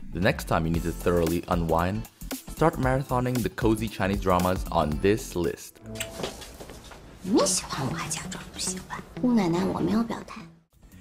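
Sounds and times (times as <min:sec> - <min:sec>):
soft background music: 0:00.0 - 0:11.0
two people talking: 0:00.2 - 0:05.7, 0:07.2 - 0:10.5.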